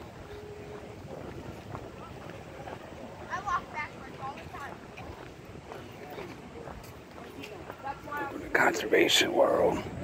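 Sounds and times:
wind rumble on microphone: 0.0s - 8.7s, 9.4s - 10.0s.

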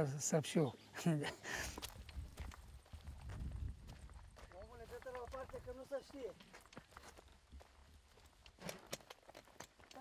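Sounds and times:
footsteps on dirt path: 0.6s - 10.0s.

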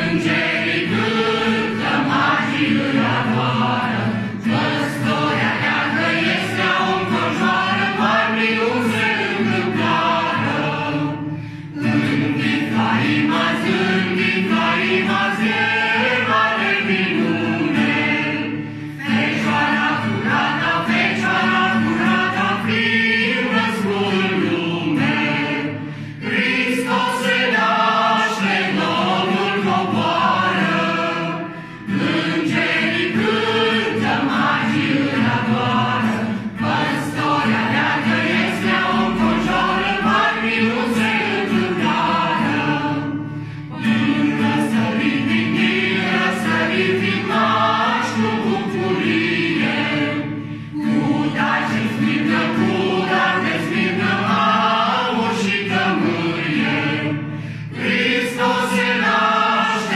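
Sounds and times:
group singing a carol: 0.0s - 59.9s
strummed acoustic guitar: 0.0s - 59.9s.

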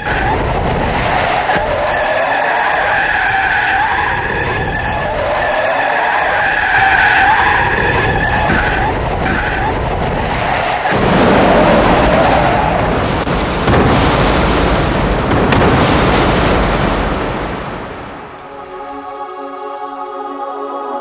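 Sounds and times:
tyres screeching in a skid: 0.0s - 13.0s
low road rumble: 0.0s - 19.0s.

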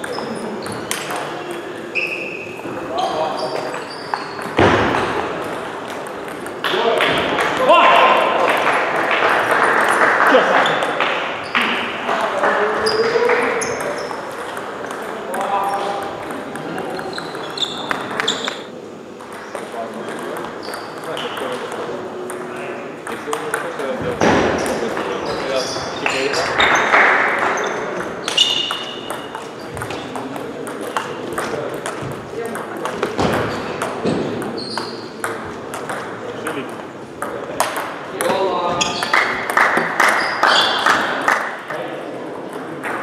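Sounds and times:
table tennis ball clicks and pings: 0.0s - 1.8s, 5.4s - 7.6s, 12.4s - 18.6s, 19.2s - 25.1s, 26.0s - 41.5s
people talking in background: 0.0s - 43.0s.

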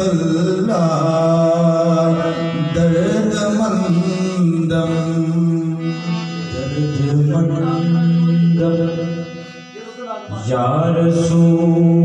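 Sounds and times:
harmonium droning notes: 0.0s - 12.0s
men chanting devotional song: 0.0s - 12.0s.

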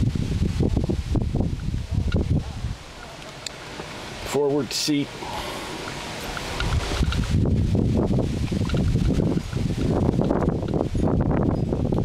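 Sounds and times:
wind buffeting microphone: 0.0s - 4.3s, 5.4s - 12.0s.

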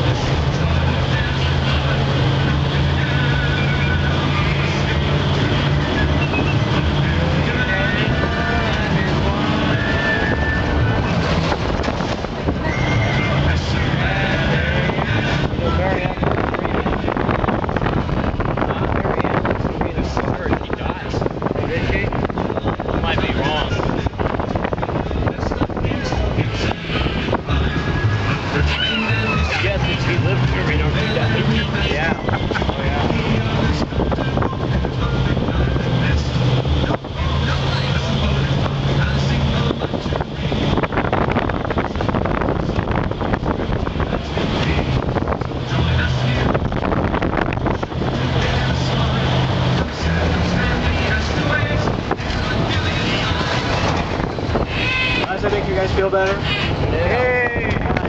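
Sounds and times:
music over loudspeakers: 0.0s - 58.0s
passengers' voices: 0.0s - 58.0s
vehicle engine: 0.0s - 58.0s
wind on microphone: 0.0s - 58.0s.

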